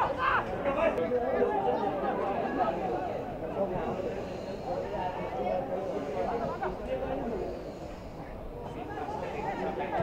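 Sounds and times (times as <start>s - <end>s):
people chattering and calling out: 0.0s - 10.0s.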